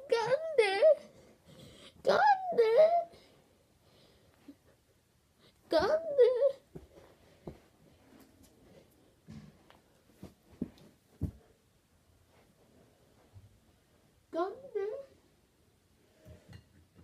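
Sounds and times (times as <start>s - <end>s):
soft thumps on floor: 10.2s - 11.5s.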